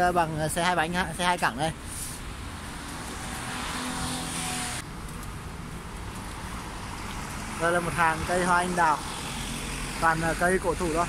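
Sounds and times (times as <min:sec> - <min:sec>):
tyres hissing on wet road: 0:06.4 - 0:10.7.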